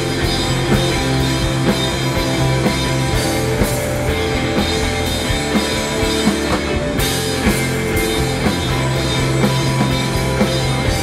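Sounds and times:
bass guitar: 0:00.0 - 0:11.0
drum kit steady beat: 0:00.0 - 0:11.0
electric guitar: 0:00.0 - 0:11.0.

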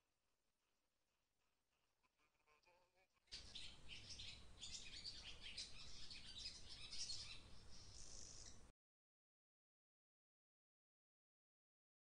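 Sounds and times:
faint birds chirping: 0:03.3 - 0:08.7.

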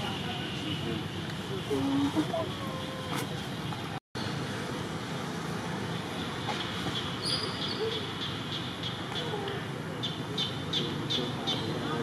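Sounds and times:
outdoor background noise: 0:00.0 - 0:12.0
distant indistinct voices: 0:06.0 - 0:12.0.

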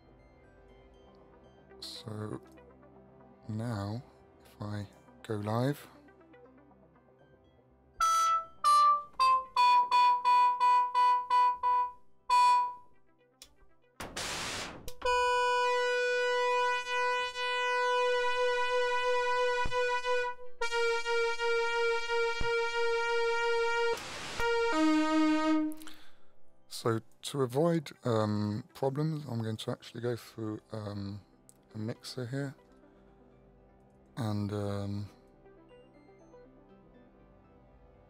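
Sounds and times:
buzzy held synth notes: 0:08.0 - 0:12.8, 0:14.2 - 0:25.8
synthesizer notes: 0:08.0 - 0:13.0, 0:14.2 - 0:26.0
burst of noise: 0:14.0 - 0:15.0, 0:24.0 - 0:25.0.

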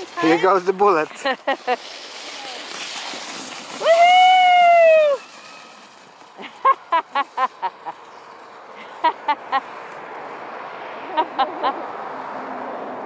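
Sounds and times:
sled sliding over snow: 0:00.0 - 0:12.7
person cheering: 0:03.8 - 0:05.2.

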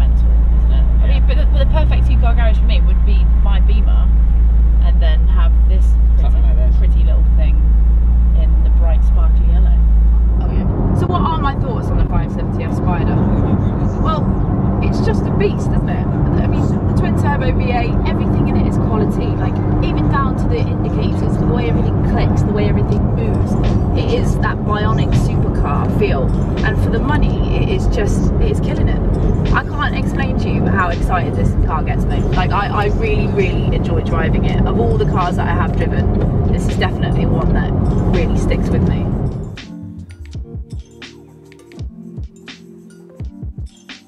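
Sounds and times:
car engine rumble and road noise: 0:00.0 - 0:42.2
background music with regular beat: 0:09.5 - 0:44.0.

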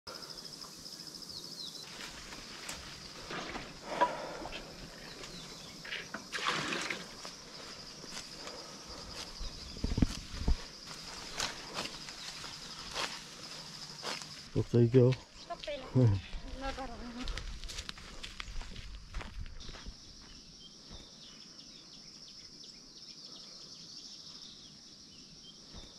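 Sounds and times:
rustles and steps in grass: 0:01.8 - 0:05.6, 0:06.4 - 0:19.9.

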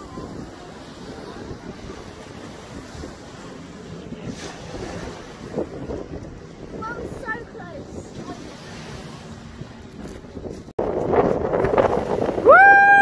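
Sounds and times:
small waves breaking on sand: 0:00.0 - 0:09.8
wind buffeting microphone: 0:00.0 - 0:13.0.

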